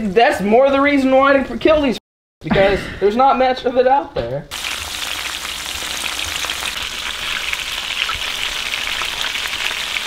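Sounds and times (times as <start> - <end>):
meat sizzling in hot oil: 4.5 - 10.0.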